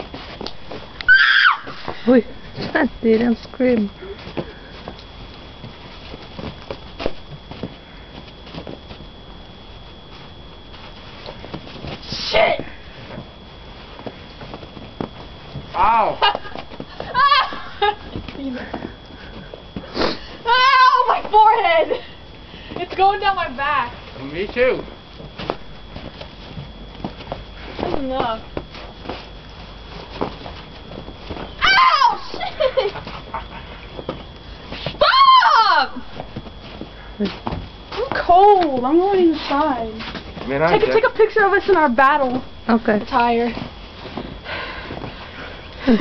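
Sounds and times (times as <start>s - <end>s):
footsteps in snow: 2.6s - 9.2s.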